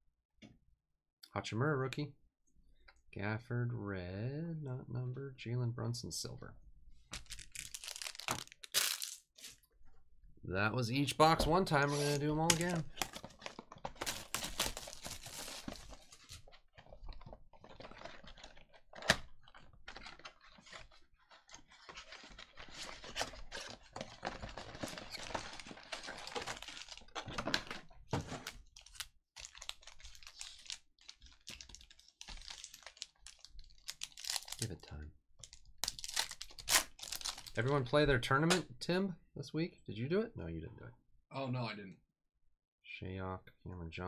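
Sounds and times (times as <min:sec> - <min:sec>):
wrappers rustling and crinkling: 0:07.2 - 0:09.6, 0:11.9 - 0:16.5, 0:19.4 - 0:27.7, 0:28.3 - 0:34.7, 0:35.4 - 0:37.7
cardboard tearing: 0:07.3 - 0:09.2, 0:11.8 - 0:16.3.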